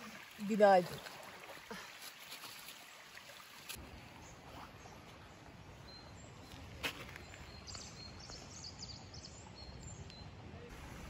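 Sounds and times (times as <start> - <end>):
stream running over stones: 0.0 - 9.1.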